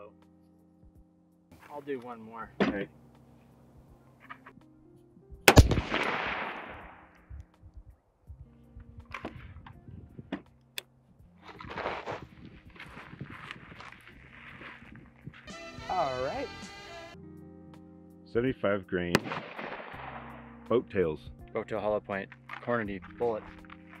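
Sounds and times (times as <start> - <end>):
rifle shot: 5.5 - 7.2, 19.2 - 20.5.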